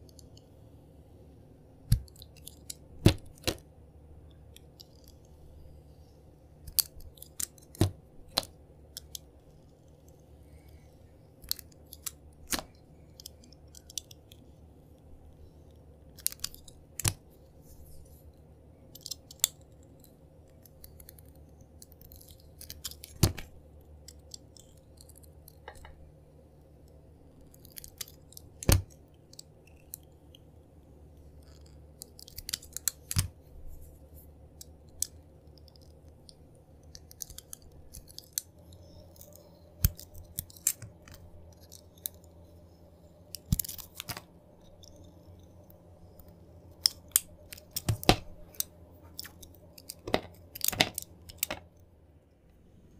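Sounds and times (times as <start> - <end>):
faint low hum: 0.0 - 52.9.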